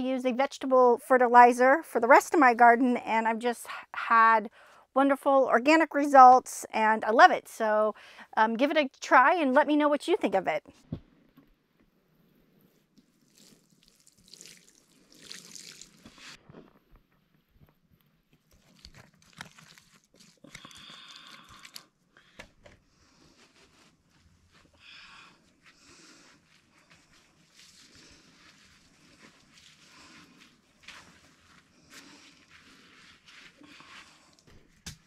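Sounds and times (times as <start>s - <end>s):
water sprinkling onto soil: 13.2s - 16.2s.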